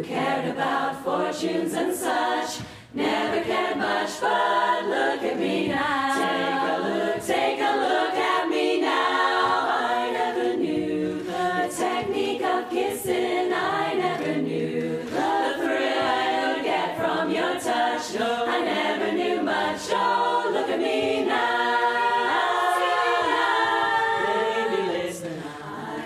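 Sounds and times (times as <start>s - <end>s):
women's chorus singing a cappella: 0.0s - 26.0s.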